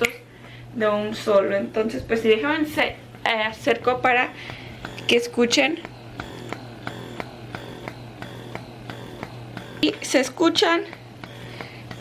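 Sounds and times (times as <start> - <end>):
breast pump humming: 0.0 - 12.0
breast pump soft clicks: 3.1 - 12.0.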